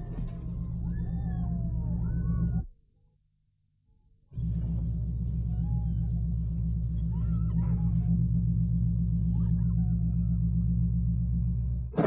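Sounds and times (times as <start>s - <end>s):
truck engine rumbling: 4.4s - 12.0s.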